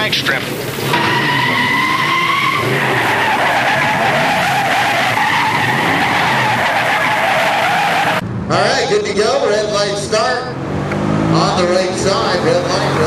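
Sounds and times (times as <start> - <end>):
car tyres screeching: 0.0 - 8.2.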